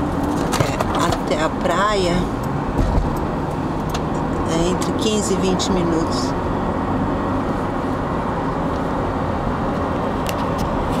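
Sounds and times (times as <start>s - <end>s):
road and engine noise in car: 0.0s - 11.0s.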